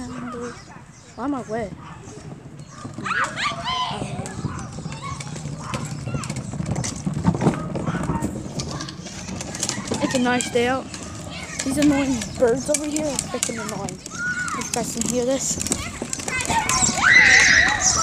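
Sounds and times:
wheeled bin rolling on pavement: 0.0 - 18.0
distant high-pitched shouts: 3.0 - 6.2, 16.3 - 18.0.

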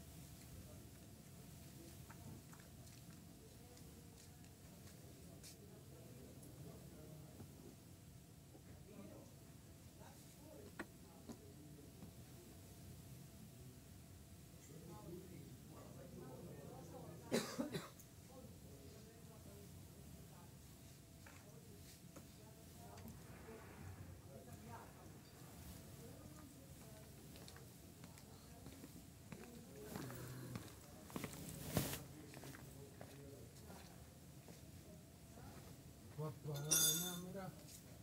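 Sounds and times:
faint low talk: 0.5 - 38.0
person coughing: 17.3 - 18.0.

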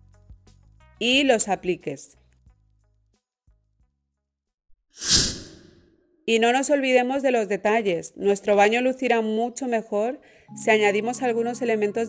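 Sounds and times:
whoosh: 5.0 - 5.8.

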